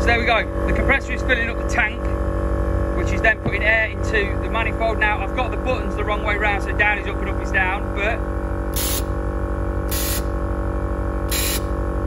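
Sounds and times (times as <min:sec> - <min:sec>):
air compressor humming: 0:00.0 - 0:12.0
short air hisses: 0:08.8 - 0:09.1, 0:09.9 - 0:10.3, 0:11.3 - 0:11.8.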